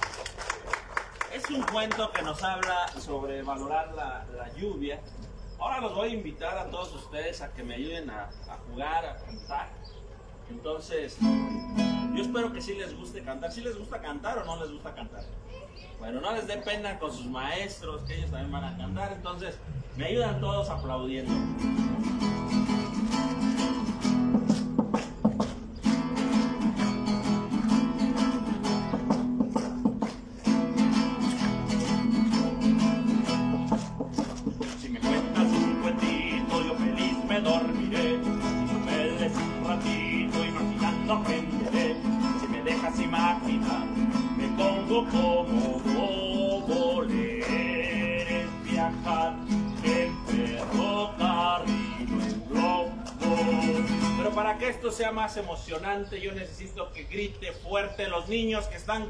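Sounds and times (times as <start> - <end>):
hands clapping along: 0.0 - 3.1, 23.1 - 54.2
acoustic guitar strumming: 11.2 - 12.7, 20.3 - 54.7
voices singing: 34.5 - 54.8.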